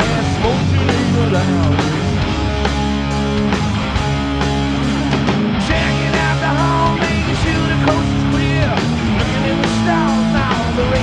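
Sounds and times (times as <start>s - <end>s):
bass guitar: 0.0s - 11.0s
drums: 0.0s - 11.0s
electric guitars: 0.0s - 11.0s.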